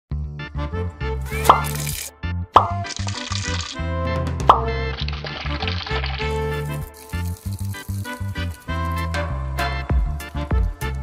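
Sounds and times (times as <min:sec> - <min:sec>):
upbeat background music: 0:00.1 - 0:11.0
rising plop sounds: 0:01.3 - 0:03.8.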